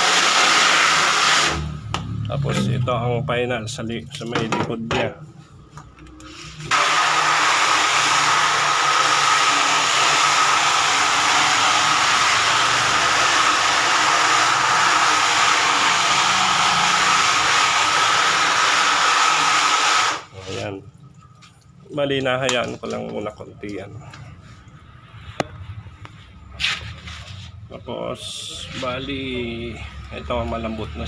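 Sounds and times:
hose nozzle spraying water: 0:00.0 - 0:01.7.

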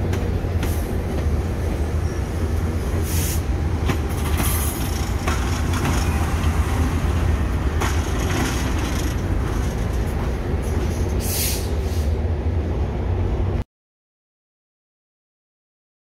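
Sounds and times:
train wheels clicking over rail joints: 0:00.0 - 0:01.8, 0:02.9 - 0:11.9
diesel locomotive drone: 0:00.0 - 0:13.6.

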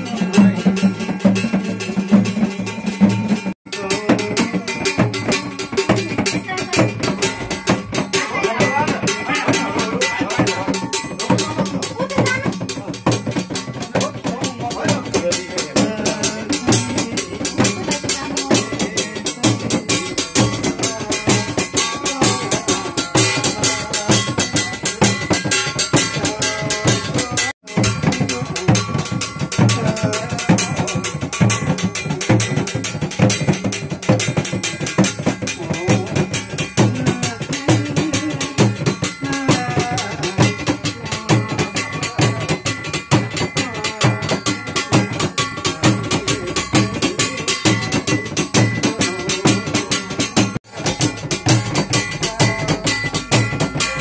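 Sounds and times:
frame drum beaten with a stick: 0:00.0 - 0:54.0.

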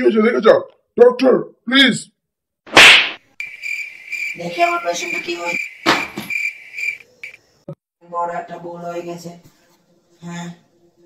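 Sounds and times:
sharp smack: 0:02.7 - 0:03.2, 0:05.8 - 0:06.3.

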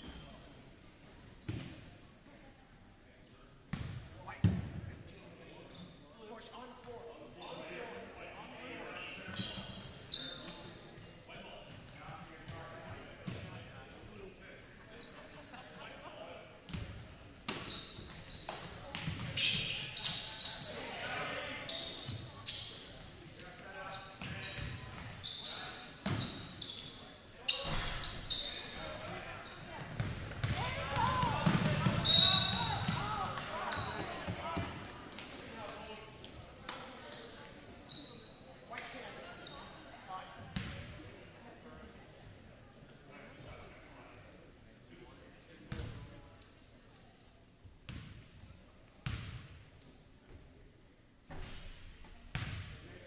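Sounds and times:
sneakers squeaking: 0:01.3 - 0:01.9, 0:08.9 - 0:11.0, 0:14.9 - 0:15.9, 0:16.7 - 0:34.7, 0:36.7 - 0:40.9, 0:49.0 - 0:49.5, 0:52.3 - 0:52.7.

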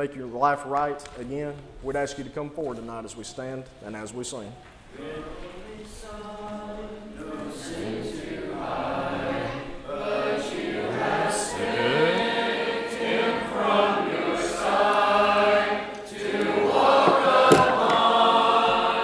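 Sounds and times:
congregation singing a hymn: 0:04.8 - 0:19.0.

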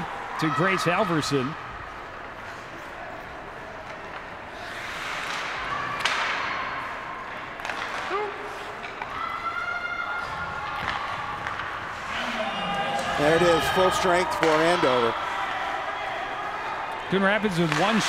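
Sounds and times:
skating and stick play on ice: 0:00.0 - 0:18.0.

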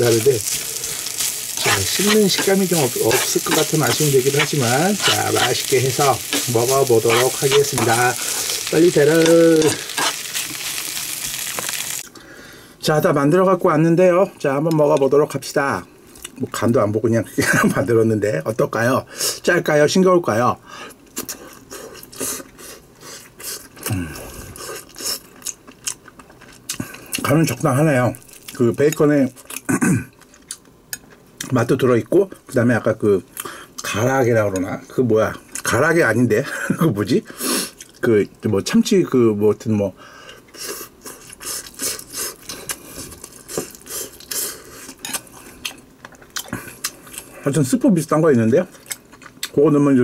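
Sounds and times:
person chewing rice: 0:00.0 - 0:12.0, 0:21.2 - 0:27.3, 0:40.4 - 0:47.4, 0:48.7 - 0:49.6
metal spoon scraping rice: 0:01.2 - 0:08.6.

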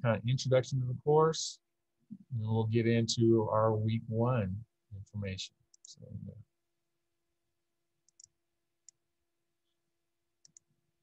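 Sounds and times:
computer mouse clicks: 0:08.1 - 0:09.0, 0:10.4 - 0:10.7.

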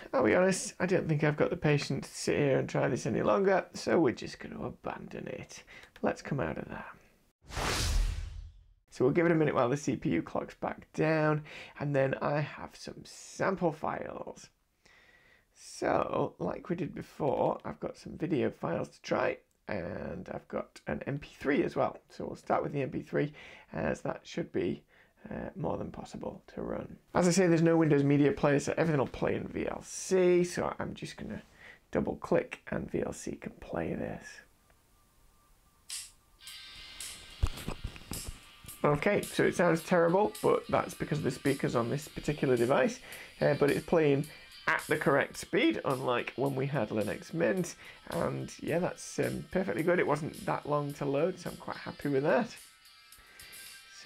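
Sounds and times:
whoosh sound effect: 0:07.5 - 0:08.6
thin music from laptop speakers: 0:33.8 - 0:54.0.

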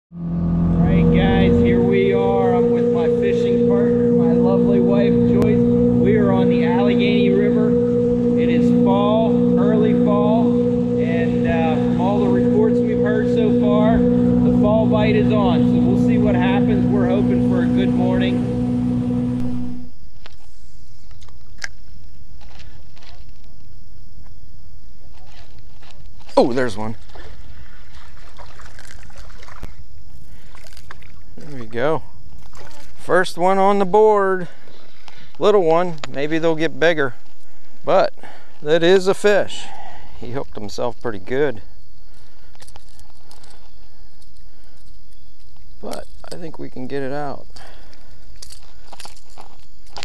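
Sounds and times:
outboard motor running: 0:00.1 - 0:20.0, 0:26.4 - 0:40.1, 0:41.3 - 0:50.0
person talking: 0:00.8 - 0:07.8, 0:08.4 - 0:18.5.

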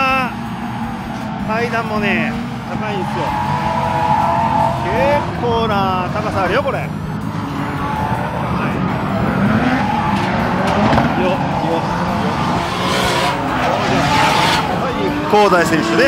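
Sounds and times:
car engines revving: 0:00.0 - 0:16.0
tyres squealing: 0:00.0 - 0:16.0.

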